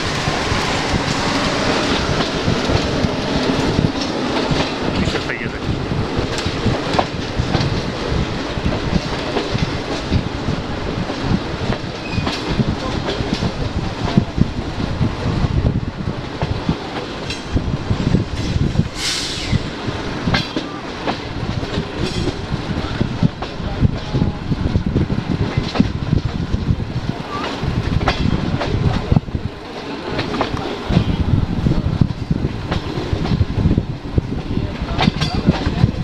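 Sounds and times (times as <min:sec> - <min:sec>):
train wheels rumbling on rail: 0:00.0 - 0:36.0.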